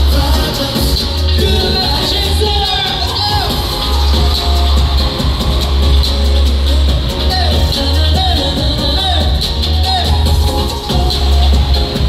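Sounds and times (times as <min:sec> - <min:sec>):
loud pop music with heavy bass: 0:00.0 - 0:12.0.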